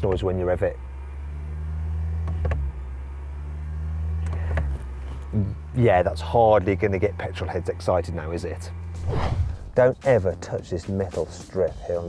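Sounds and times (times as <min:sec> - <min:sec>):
car engine revving: 0:00.0 - 0:10.2.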